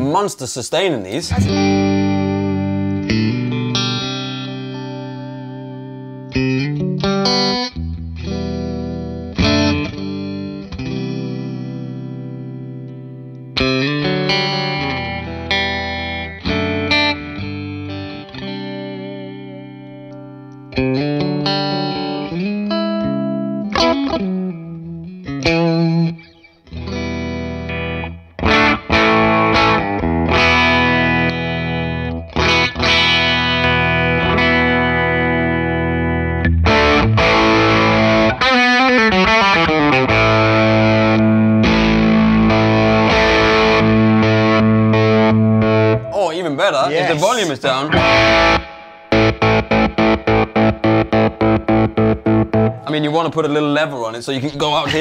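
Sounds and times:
distorted electric guitar: 1.2 - 53.1.

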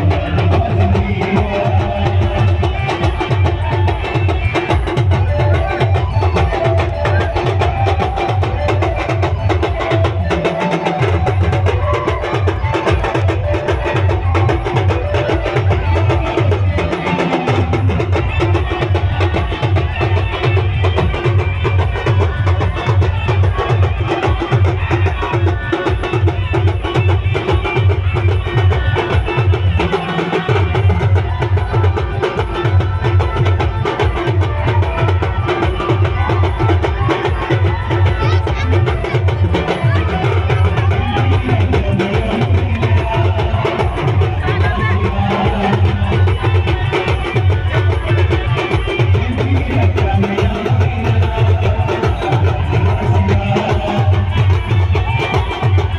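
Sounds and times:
band music with fast drums: 0.0 - 55.9.

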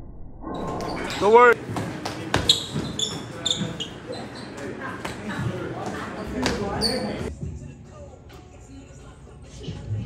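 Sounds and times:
voices chattering and calling out: 0.6 - 7.3.

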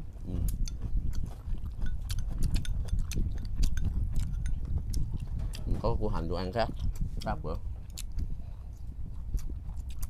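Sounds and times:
person chewing: 0.0 - 5.9, 6.6 - 10.0
steady low rumble: 0.0 - 10.0.

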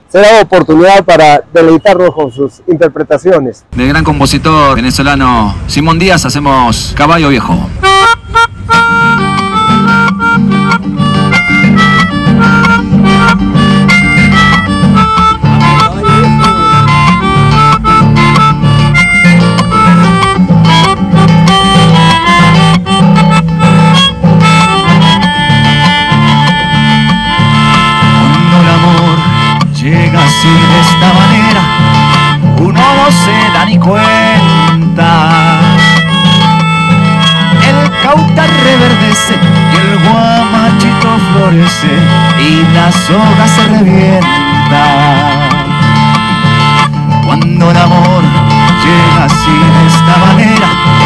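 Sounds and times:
melodica melody: 3.6 - 51.0
classical guitar strumming chords: 3.7 - 51.0.

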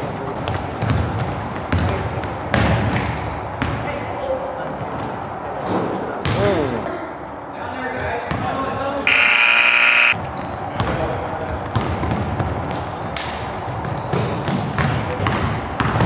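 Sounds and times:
sneaker squeaks: 2.2 - 3.3, 12.4 - 15.3
players' voices: 5.9 - 10.1
scoreboard buzzer: 9.1 - 10.2.

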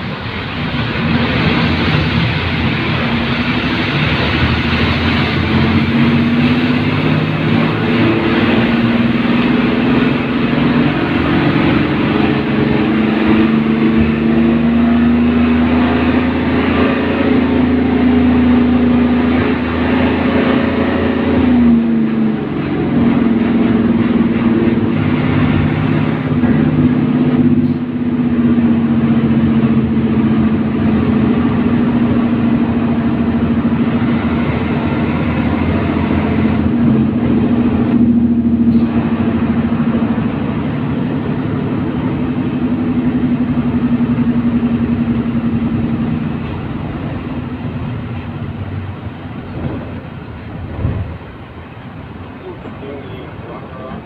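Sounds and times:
bus diesel engine: 0.0 - 54.0
road noise: 0.0 - 54.0.

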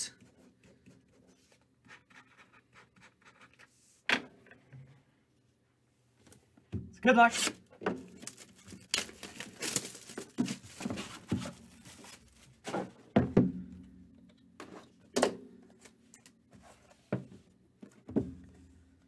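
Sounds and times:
cardboard wrapping crackling: 8.2 - 12.6.

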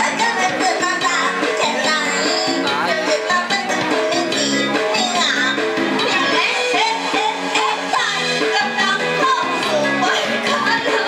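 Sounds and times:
karaoke backing track with beat: 0.0 - 11.0
women singing into microphones: 0.0 - 11.0.

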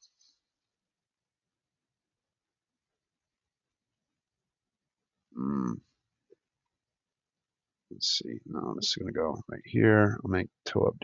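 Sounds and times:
man humming hmm: 5.4 - 5.8.

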